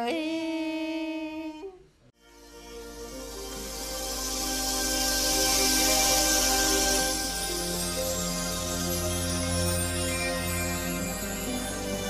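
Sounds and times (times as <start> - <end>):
instrumental music: 2.2 - 12.0.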